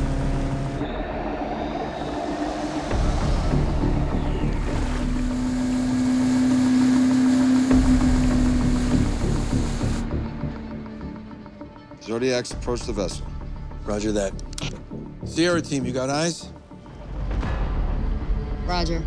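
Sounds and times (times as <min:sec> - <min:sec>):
boat outboard motors: 0:00.0 - 0:11.6
dramatic orchestral score: 0:00.0 - 0:19.0.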